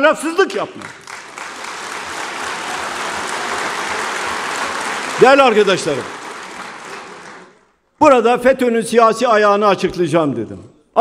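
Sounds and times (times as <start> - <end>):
audience applause: 0.7 - 7.7.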